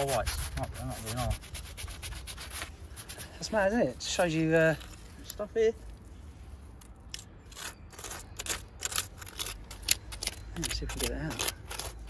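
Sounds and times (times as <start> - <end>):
fingers scraping gravel: 0.0 - 5.5, 7.1 - 12.0.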